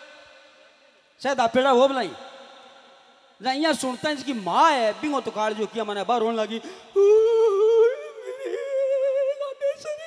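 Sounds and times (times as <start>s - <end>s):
man mock crying: 6.7s - 10.0s.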